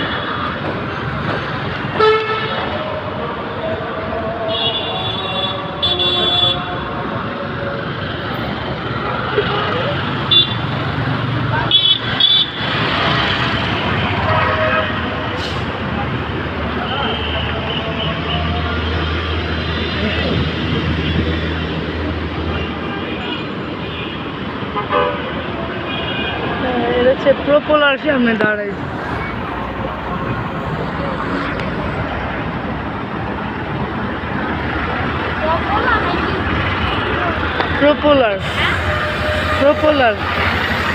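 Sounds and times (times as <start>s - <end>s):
vehicles passing: 0.0s - 40.9s
large vehicle engine drone: 18.0s - 22.5s, 28.7s - 40.9s.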